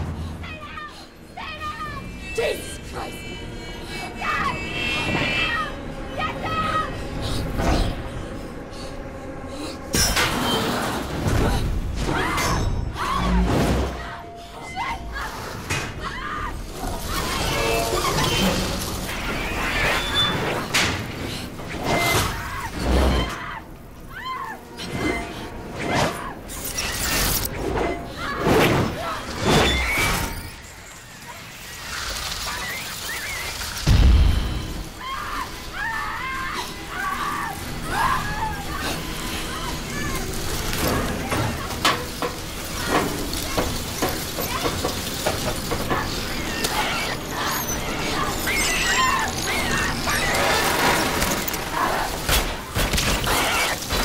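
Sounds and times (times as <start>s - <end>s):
horror film music: 0.0s - 54.0s
heavy crashes and shattering: 49.9s - 54.0s.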